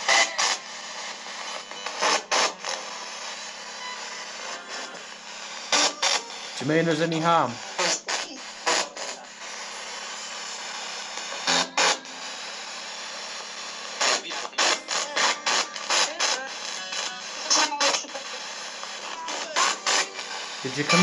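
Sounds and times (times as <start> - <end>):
choppy radio sound bursts: 0.0 - 21.0
radio static hiss: 0.0 - 21.0.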